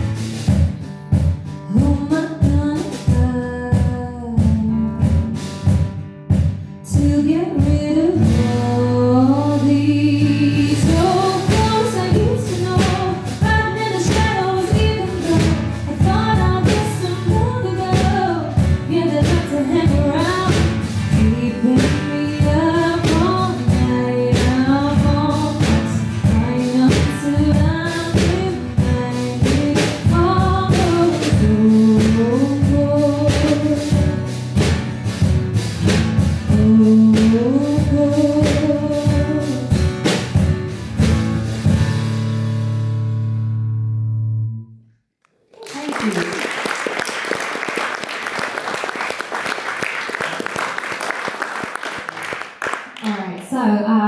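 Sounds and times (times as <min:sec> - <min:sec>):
drum kit beat: 0:00.0 - 0:42.4
strummed acoustic guitar: 0:00.0 - 0:44.0
woman singing: 0:01.6 - 0:05.8, 0:06.8 - 0:34.5, 0:36.2 - 0:40.0, 0:53.0 - 0:54.0.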